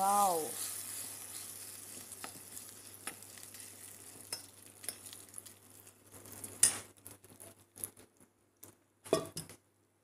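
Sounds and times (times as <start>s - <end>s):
hot oil sizzling: 0.0s - 8.1s.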